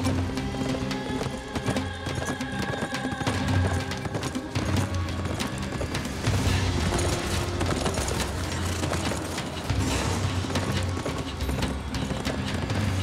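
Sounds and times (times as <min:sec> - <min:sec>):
background music with low notes: 0:00.0 - 0:13.0
horses galloping hoofbeats: 0:00.0 - 0:13.0.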